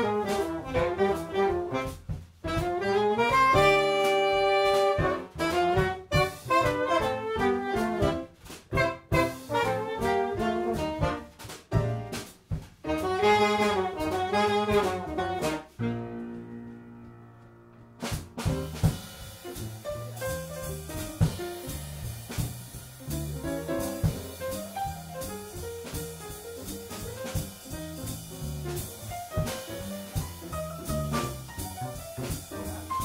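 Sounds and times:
saxophone and trombone: 0.0s - 12.2s, 12.8s - 16.5s, 18.0s - 33.0s
drum kit: 0.0s - 33.0s
piano: 0.0s - 33.0s
upright bass: 0.0s - 33.0s.

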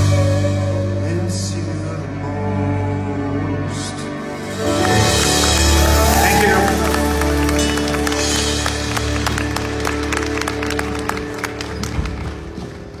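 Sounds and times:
audience clapping: 4.6s - 13.0s.

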